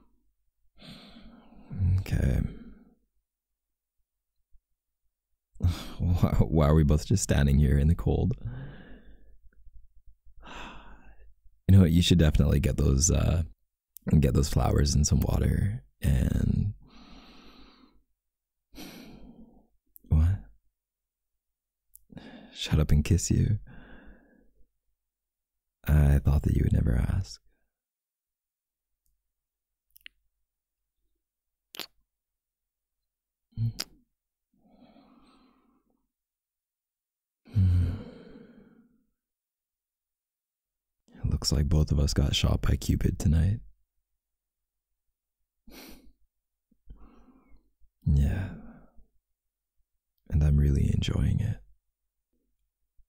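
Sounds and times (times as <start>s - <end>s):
man sighing: 5.6s - 6.2s, 37.5s - 38.4s.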